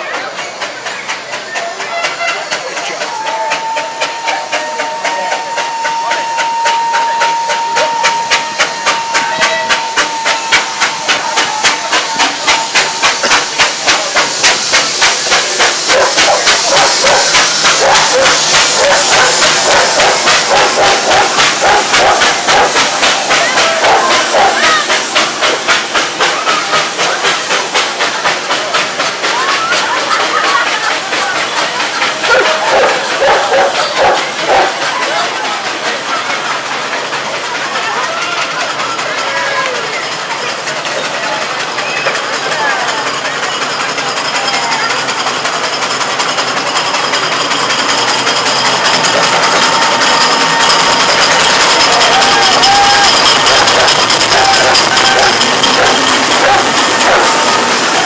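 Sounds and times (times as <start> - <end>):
steam engine exhaust chuffing: 0.0 - 58.0
steam hissing: 0.0 - 58.0
steam whistle: 3.2 - 13.7, 49.2 - 58.0.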